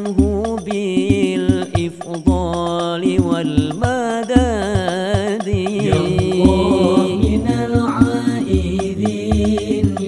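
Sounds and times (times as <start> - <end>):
man singing: 0.2 - 10.0
frame drum strikes: 5.7 - 7.9.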